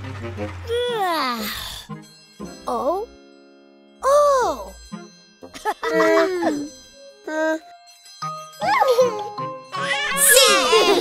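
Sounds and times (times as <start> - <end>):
light background music: 0.0 - 11.0
cartoon children's vocal sounds: 9.8 - 11.0.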